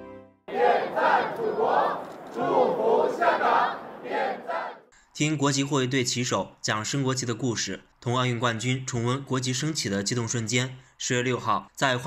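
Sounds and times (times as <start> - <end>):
crowd shouting in unison: 0.5 - 4.9.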